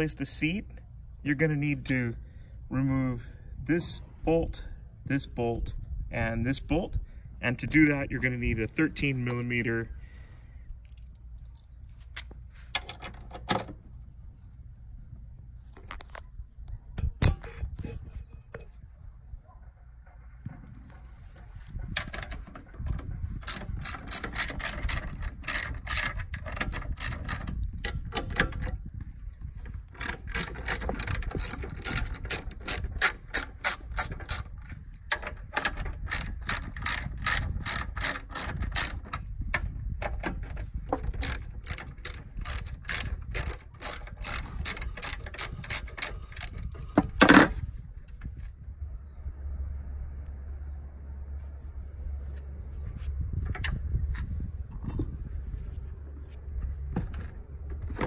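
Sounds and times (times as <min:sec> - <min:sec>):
ratchet wrench clicking: 0:23.3 - 0:28.7, 0:29.9 - 0:34.8, 0:35.5 - 0:39.6, 0:41.0 - 0:47.2.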